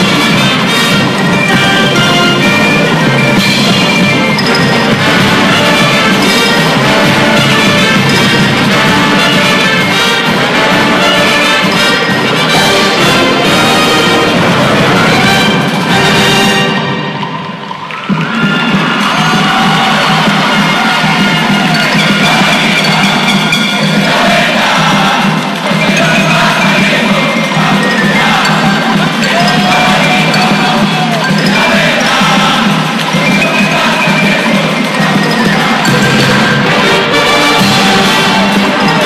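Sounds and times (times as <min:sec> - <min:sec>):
crowd cheering and shouting: 0:00.0 - 0:39.0
marching band brass and percussion: 0:00.0 - 0:39.0.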